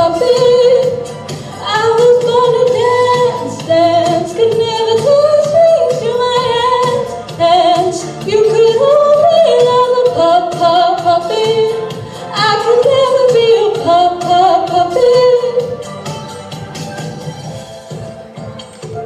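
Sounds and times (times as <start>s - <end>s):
young woman singing: 0.0s - 15.8s.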